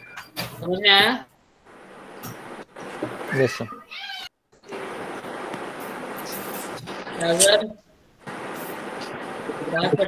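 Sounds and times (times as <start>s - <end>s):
steady hiss: 4.6s - 10.0s.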